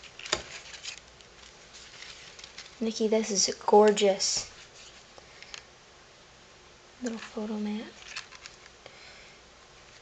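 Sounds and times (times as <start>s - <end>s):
cardstock rustling: 0.0s - 5.1s.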